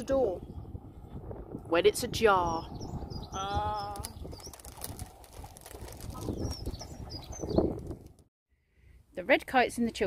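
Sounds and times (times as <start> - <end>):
wind buffeting microphone: 0.0 - 8.3
bird chirps: 6.1 - 7.8.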